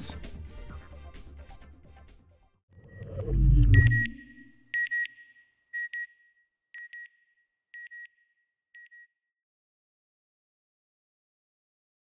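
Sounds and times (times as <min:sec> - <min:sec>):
electronic beeps in pairs: 0:02.8 - 0:07.2
low whoosh: 0:02.9 - 0:04.5.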